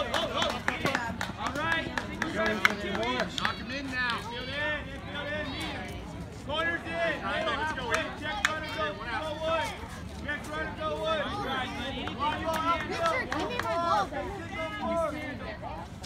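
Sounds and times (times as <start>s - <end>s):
indistinct chatter of voices: 0.0s - 16.0s.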